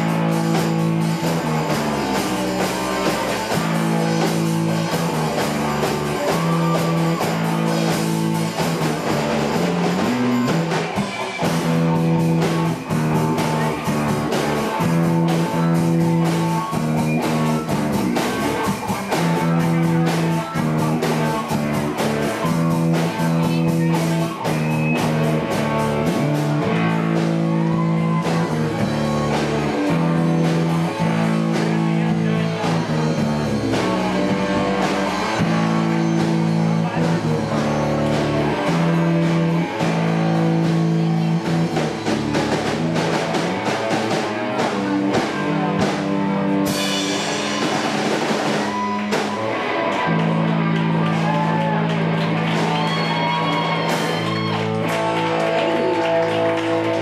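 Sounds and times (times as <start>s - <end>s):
drum kit: 0.0s - 57.0s
electric guitar chords: 0.0s - 57.0s.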